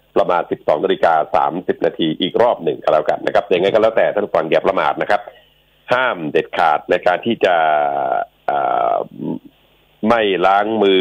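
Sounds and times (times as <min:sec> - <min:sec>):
man's hesitation sound: 0:07.7 - 0:09.6.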